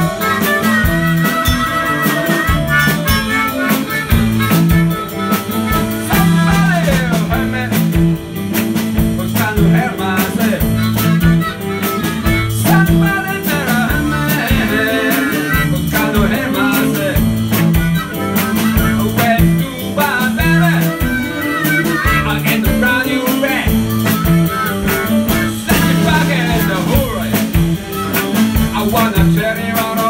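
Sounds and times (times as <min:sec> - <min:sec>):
blues band playing: 0:00.0 - 0:30.0
blues harmonica: 0:00.0 - 0:30.0
electric guitar: 0:00.0 - 0:30.0.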